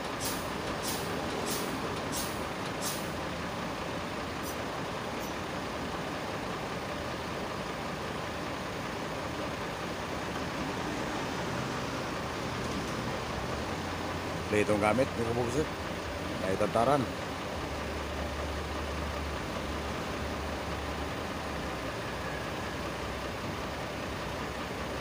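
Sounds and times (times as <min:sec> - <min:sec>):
vehicle noise: 0:00.0 - 0:25.0.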